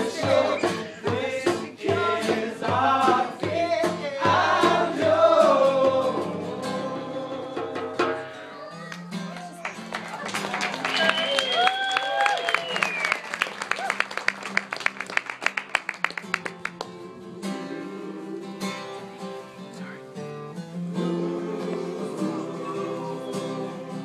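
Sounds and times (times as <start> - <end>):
group of men singing: 0.0 - 8.4, 17.1 - 19.6, 20.8 - 24.0
acoustic guitar strumming: 0.0 - 9.9, 16.0 - 24.0.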